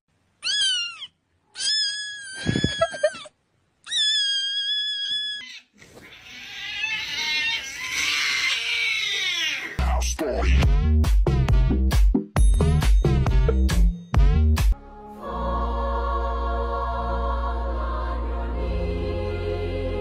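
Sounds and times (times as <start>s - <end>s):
cat meowing: 0.4s - 3.2s, 3.9s - 9.8s
angry cat yowling: 0.4s - 9.8s
electronic beat: 10.6s - 14.8s.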